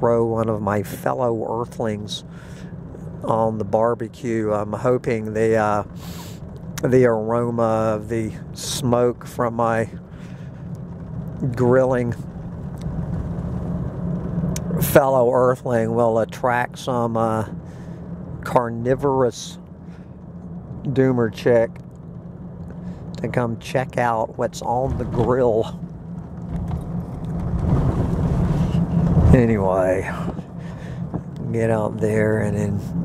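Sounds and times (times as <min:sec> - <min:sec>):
truck engine and road noise: 0:00.0 - 0:33.0.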